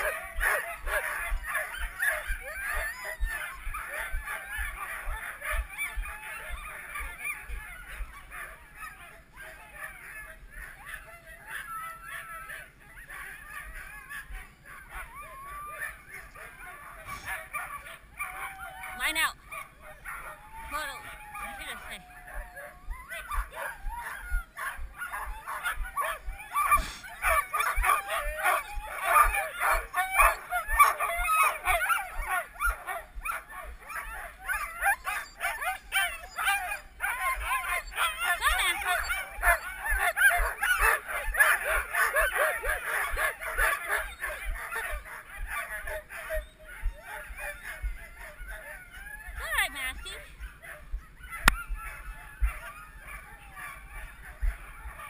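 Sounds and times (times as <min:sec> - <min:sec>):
dogs yelping and barking: 0:00.0 - 0:55.0.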